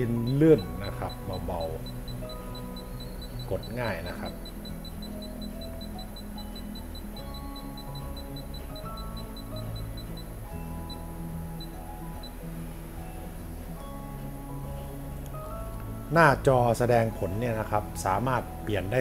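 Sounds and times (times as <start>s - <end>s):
short high electronic beeps: 0.0s - 12.4s
background music: 0.0s - 19.0s.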